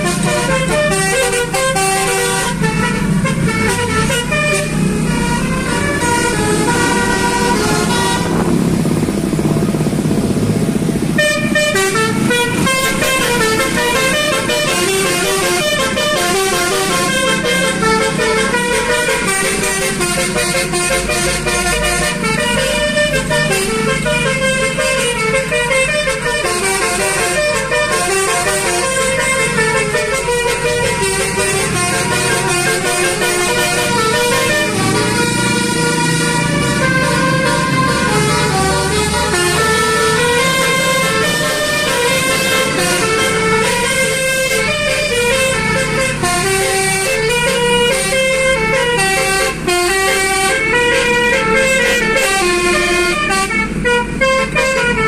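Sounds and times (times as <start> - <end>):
multi-tone air horn melody: 0.0 - 8.9, 11.0 - 55.0
road and engine noise: 0.0 - 55.0.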